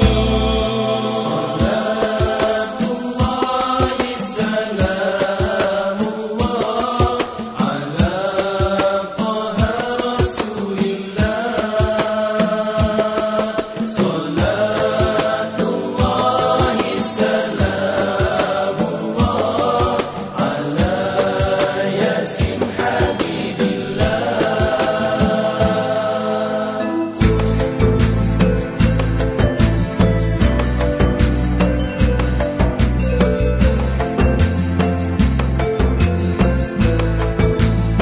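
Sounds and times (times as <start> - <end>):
frame drums beating: 0.0 - 26.3, 27.2 - 38.0
male voices chanting a song: 0.0 - 28.6.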